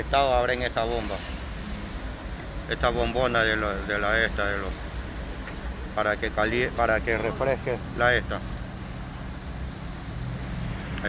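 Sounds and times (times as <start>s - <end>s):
low rumble of vehicle engines: 0.0s - 11.0s.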